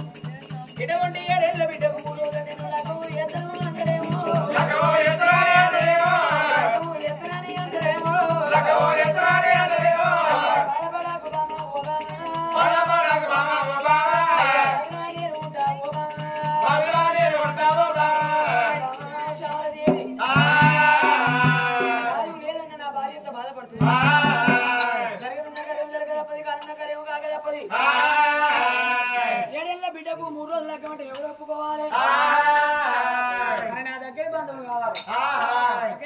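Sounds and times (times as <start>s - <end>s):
fast percussion beat with rattling: 0.0s - 22.6s, 23.8s - 36.0s
folk singing: 0.8s - 36.0s.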